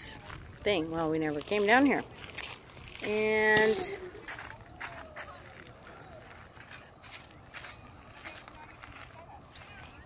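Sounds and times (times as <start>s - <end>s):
footsteps crunching on wood chips: 0.2s - 10.0s
faint distant voices: 3.0s - 10.0s.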